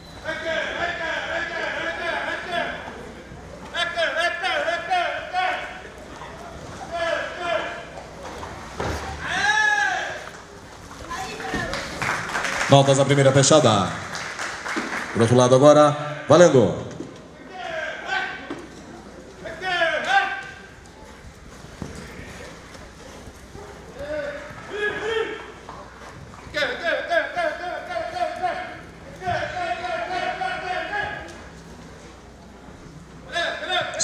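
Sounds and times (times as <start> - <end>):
man shouting: 9.2 - 10.3, 17.4 - 18.4, 19.5 - 20.6, 24.0 - 25.5, 26.6 - 31.3, 33.3 - 34.0.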